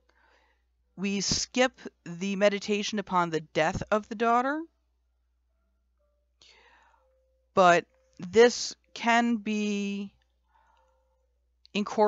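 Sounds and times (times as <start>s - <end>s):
faint intake of breath: 6.4s - 7.2s.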